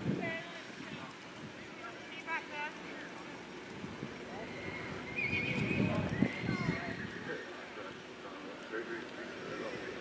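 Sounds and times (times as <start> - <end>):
horse whinnying: 4.3 - 7.4.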